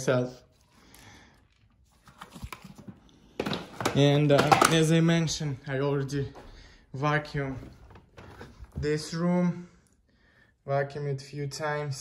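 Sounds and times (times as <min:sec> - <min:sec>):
plastic clicks and knocks: 0:03.4 - 0:04.9
loud plastic clatter: 0:03.4 - 0:05.0.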